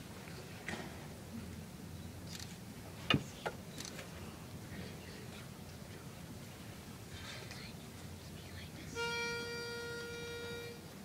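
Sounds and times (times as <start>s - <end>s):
pitch pipe reedy note: 9.0s - 10.8s.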